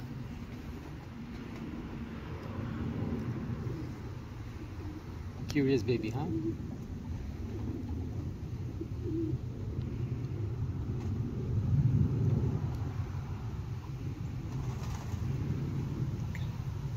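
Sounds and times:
low outdoor rumble: 0.0 - 16.9.

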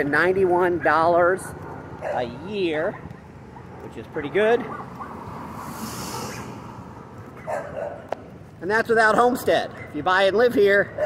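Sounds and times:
dog barking: 1.6 - 3.9, 4.6 - 5.3, 7.4 - 8.1, 9.7 - 10.0.

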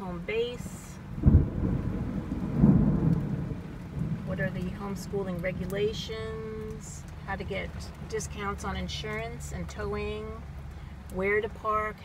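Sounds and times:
heavy rain on vehicle roof: 0.0 - 12.0
thunder rumble: 1.0 - 6.9.

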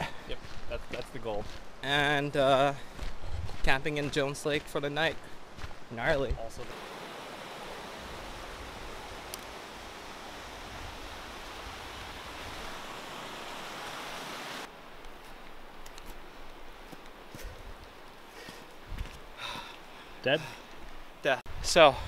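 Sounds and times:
creek water rushing: 6.6 - 21.2.

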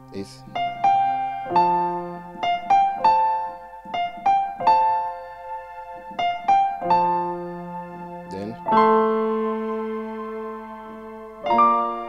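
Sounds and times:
low piano bass notes: 0.0 - 12.0
slow piano melody: 0.0 - 12.0.

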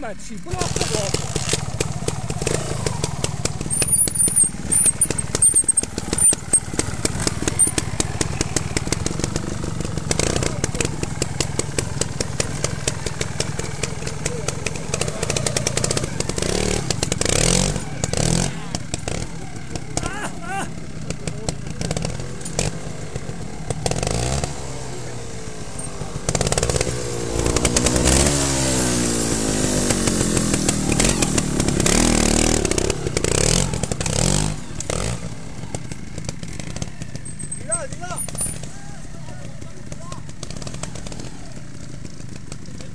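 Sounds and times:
motorcycle engine revving: 0.0 - 42.9.

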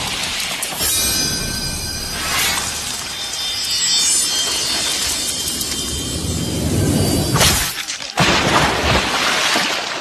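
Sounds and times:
crashing and splashing effects: 7.3 - 10.0.

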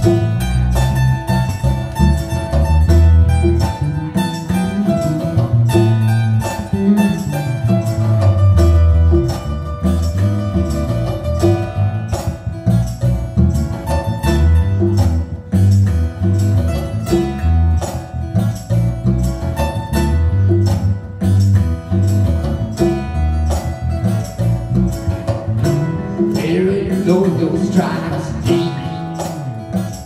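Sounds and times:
acoustic guitar strumming: 0.0 - 30.0
plucked bass line: 0.0 - 30.0
person singing: 26.2 - 29.6.

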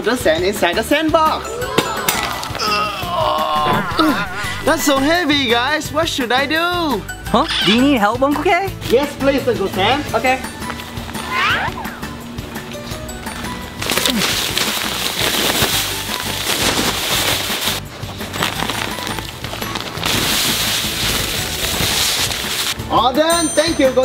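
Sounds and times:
background music: 0.0 - 24.0
sand pouring hissing: 20.0 - 22.8.

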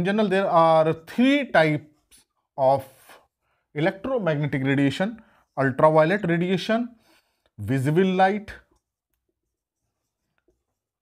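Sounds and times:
marker writing on whiteboard: 8.7 - 11.0.

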